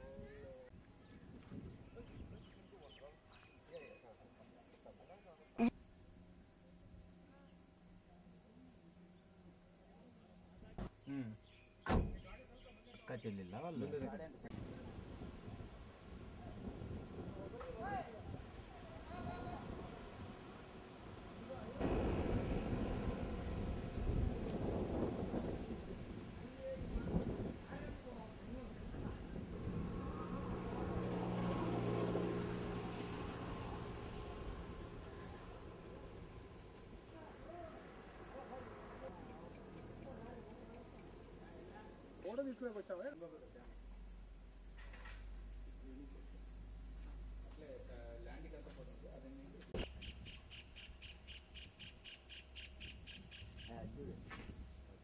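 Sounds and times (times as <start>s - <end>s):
wind on microphone: 0.0s - 2.6s, 21.8s - 31.5s
high chirping calls: 49.8s - 53.8s.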